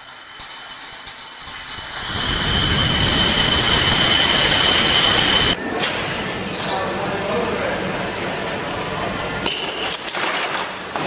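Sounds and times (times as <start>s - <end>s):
high ringing tone: 1.4s - 6.6s.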